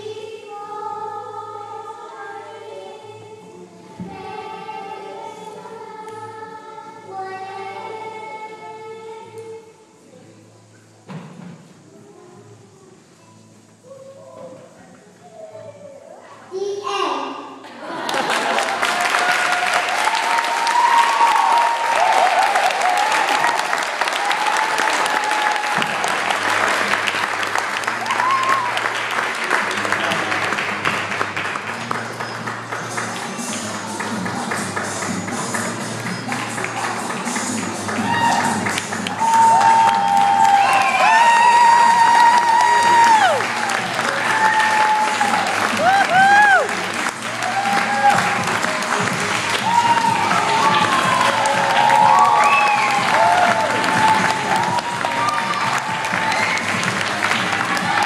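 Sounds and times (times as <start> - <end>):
audience applauding: 17.8 - 58.0.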